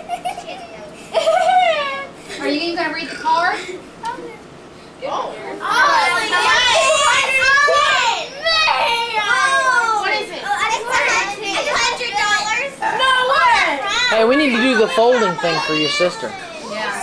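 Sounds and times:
children chattering excitedly: 0:01.9 - 0:17.0.

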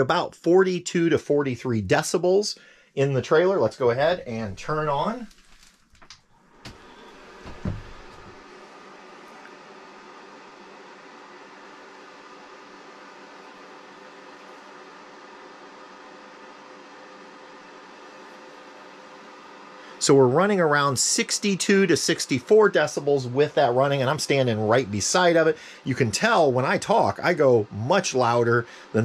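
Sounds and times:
faint steady hum: 0:00.0 - 0:29.0
fan heater rush of air: 0:01.4 - 0:05.6, 0:06.5 - 0:29.0.

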